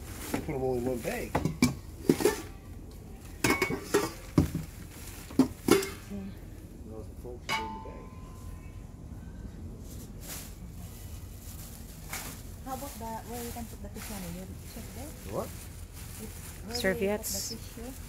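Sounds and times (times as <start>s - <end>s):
dishes clattering in plastic tub: 1.2s - 2.6s, 3.4s - 6.0s
metal bowl clink ringing: 3.4s - 4.2s, 7.5s - 8.7s.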